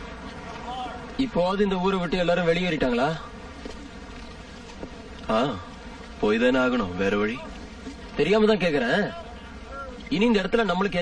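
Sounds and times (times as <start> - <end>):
steady buzzing hum: 0.0 - 11.0.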